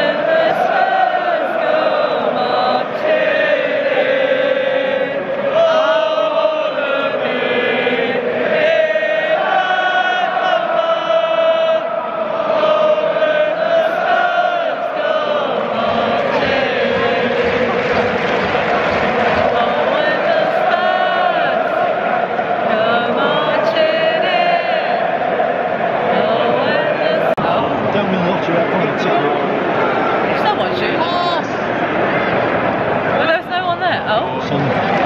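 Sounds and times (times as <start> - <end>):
woman singing along: 0.0 - 4.1, 19.4 - 21.9, 22.6 - 25.0, 26.1 - 27.8
stadium crowd singing: 0.0 - 35.0.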